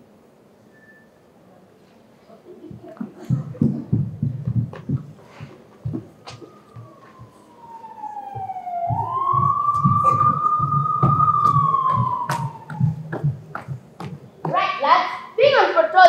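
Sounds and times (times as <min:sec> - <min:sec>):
low thuds: 0:02.7 - 0:14.7
siren wail: 0:05.9 - 0:13.8.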